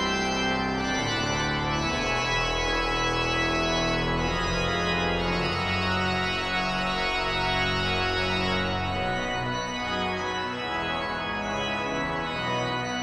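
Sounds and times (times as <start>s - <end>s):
pipe organ chords: 0.0s - 13.0s.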